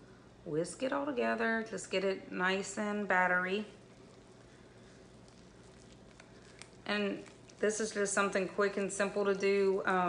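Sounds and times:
wire whisk beating batter: 0:03.6 - 0:10.0.

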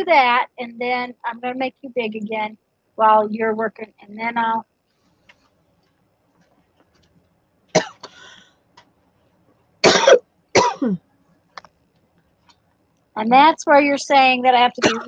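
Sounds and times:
woman coughing: 0:07.8 - 0:08.3, 0:09.8 - 0:11.0, 0:14.8 - 0:15.0.

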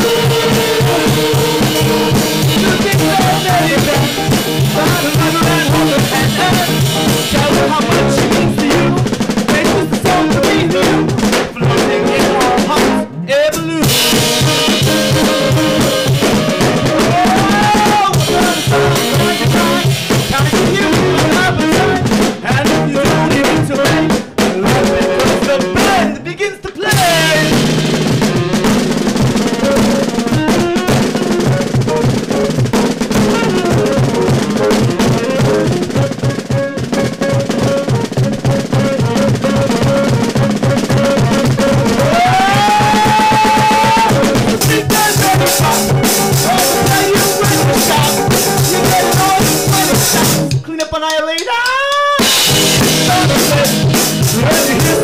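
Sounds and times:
bass: 0:00.0 - 0:26.2, 0:26.9 - 0:32.2, 0:38.4 - 0:50.7, 0:52.2 - 0:55.0
saxophone: 0:00.0 - 0:26.2, 0:26.8 - 0:50.6, 0:51.9 - 0:55.0
drum kit: 0:00.0 - 0:55.0
electric guitar: 0:00.0 - 0:55.0.

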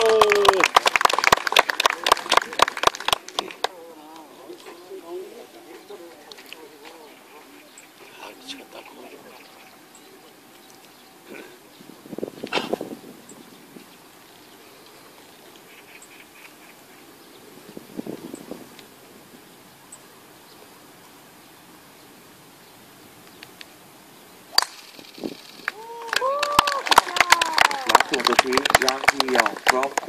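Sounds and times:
faint murmurs of spectators: 0:00.0 - 0:13.0
golf club striking ball: 0:24.5 - 0:25.3.

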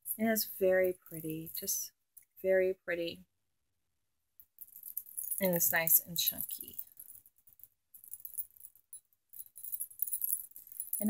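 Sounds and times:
metal charm bracelet clinking: 0:04.5 - 0:11.0.

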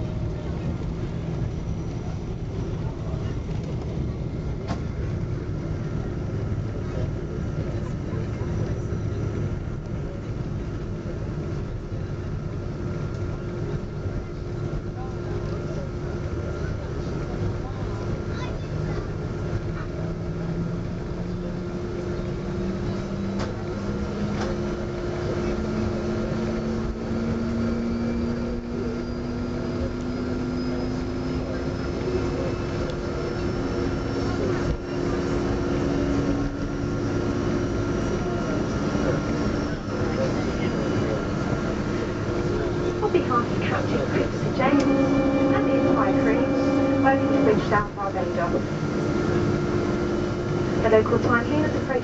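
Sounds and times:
airplane cabin rumble: 0:00.0 - 0:52.0
low engine hum rising: 0:00.0 - 0:52.0.

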